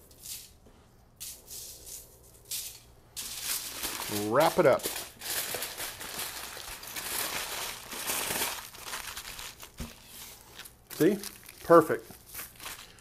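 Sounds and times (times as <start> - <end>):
aluminium foil crinkling: 1.4 - 13.0.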